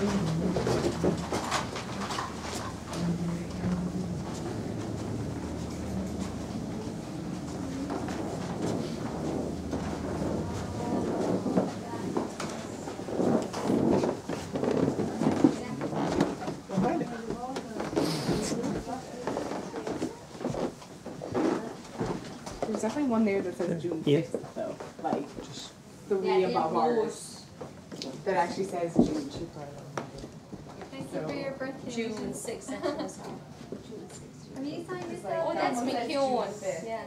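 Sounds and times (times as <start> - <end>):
steady low hum: 0.0 - 26.9
people talking while walking: 0.0 - 37.0.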